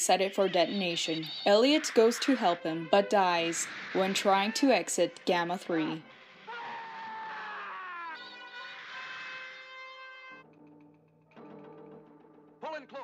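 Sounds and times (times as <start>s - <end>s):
dramatic film score: 0.0s - 13.0s.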